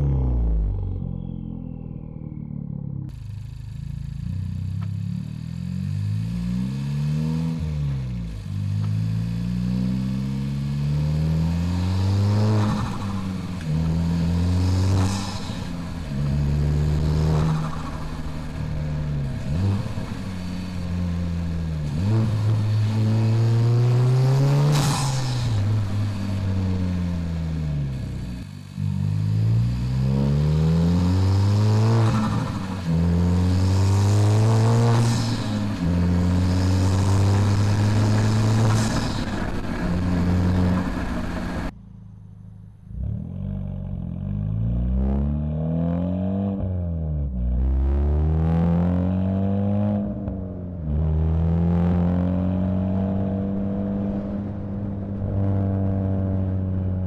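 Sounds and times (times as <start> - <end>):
car engine accelerating through gears: 0.0 - 41.8, 42.9 - 57.0.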